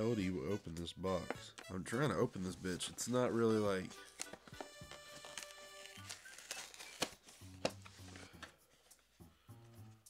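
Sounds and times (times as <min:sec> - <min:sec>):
soft background music: 0:00.0 - 0:10.0
cardboard snapping: 0:04.2 - 0:08.5
cardboard box opened by hand: 0:05.2 - 0:08.0.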